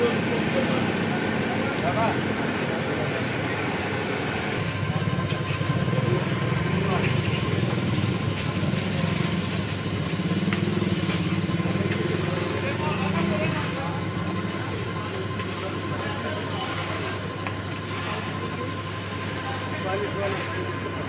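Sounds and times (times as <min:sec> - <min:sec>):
faint voices: 0:00.0 - 0:21.0
motor-driven stirrer drone: 0:00.0 - 0:21.0.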